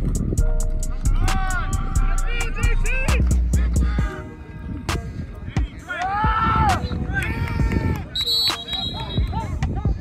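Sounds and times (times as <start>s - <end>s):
music playing: 0.0s - 10.0s
voices shouting: 1.0s - 4.9s
referee's whistle long blast: 8.2s - 9.3s.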